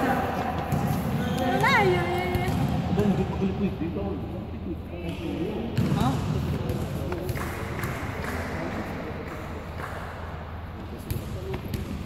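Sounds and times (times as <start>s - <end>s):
basketball bouncing on court floor: 0.4s - 3.2s, 5.8s - 8.4s, 11.0s - 12.0s.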